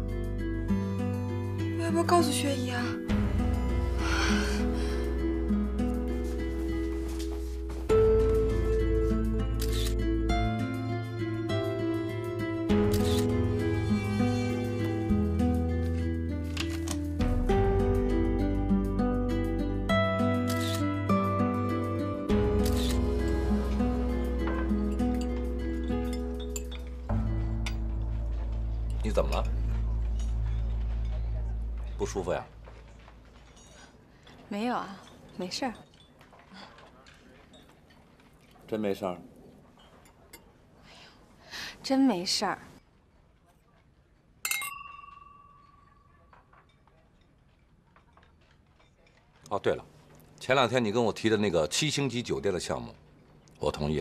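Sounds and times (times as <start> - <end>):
background music with held notes: 0.0 - 33.9
camera shutter click: 9.6 - 10.0, 20.5 - 20.8
wine glasses clinking and ringing: 44.4 - 46.4.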